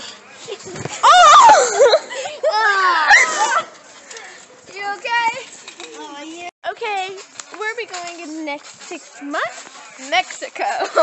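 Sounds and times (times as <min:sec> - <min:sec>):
children squealing: 0:00.9 - 0:03.8.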